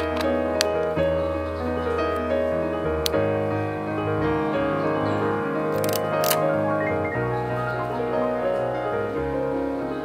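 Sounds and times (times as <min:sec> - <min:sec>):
piano background music: 0:00.0 - 0:10.0
camera mechanical clicks: 0:05.8 - 0:06.5.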